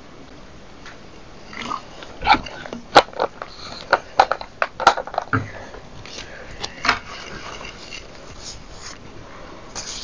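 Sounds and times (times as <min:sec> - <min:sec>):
soft rustle: 0:07.1 - 0:09.1.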